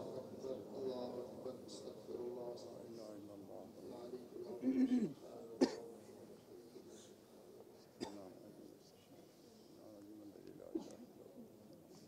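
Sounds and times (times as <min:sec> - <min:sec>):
man clearing throat: 0:04.6 - 0:05.9, 0:08.0 - 0:08.3
man coughing: 0:04.6 - 0:05.9, 0:08.0 - 0:08.3.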